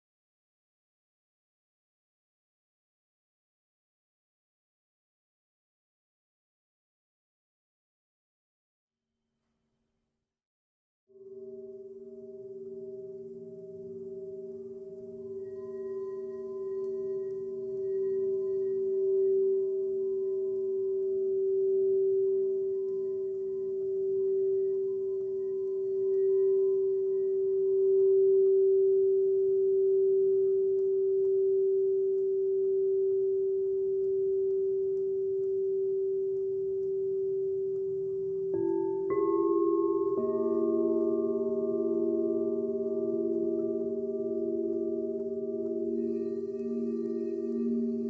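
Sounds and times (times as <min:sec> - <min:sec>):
singing bowl tone: 0:11.2 - 0:48.0.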